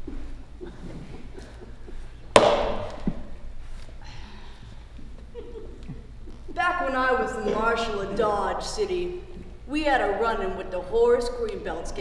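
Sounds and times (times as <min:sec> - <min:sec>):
loud bang echoing in hall: 0:02.4 - 0:03.4.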